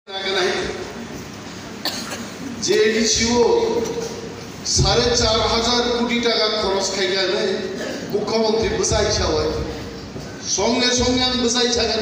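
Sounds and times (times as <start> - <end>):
man speaking into a microphone: 0.1 - 1.0, 2.4 - 12.0
room noise: 0.1 - 12.0.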